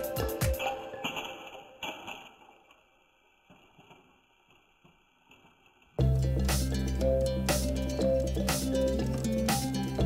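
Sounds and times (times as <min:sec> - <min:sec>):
music: 0:00.0 - 0:01.8, 0:06.0 - 0:10.0.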